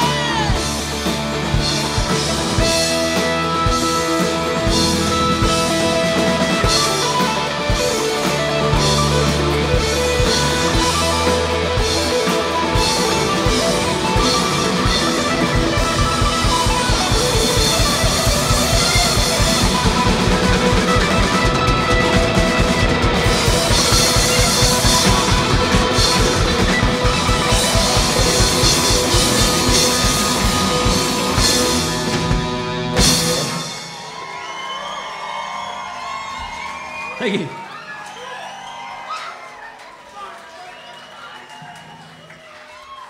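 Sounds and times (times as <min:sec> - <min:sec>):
held bass notes: 0:00.0 - 0:33.6
drum kit fast beat: 0:00.0 - 0:34.1
electric guitar: 0:00.0 - 0:34.2.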